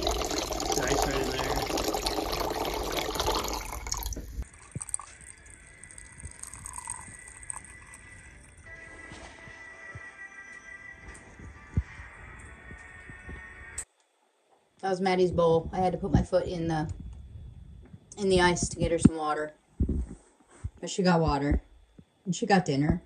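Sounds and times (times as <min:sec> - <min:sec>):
water pouring from jug: 0:00.0 - 0:08.7
faint background music: 0:04.4 - 0:23.0.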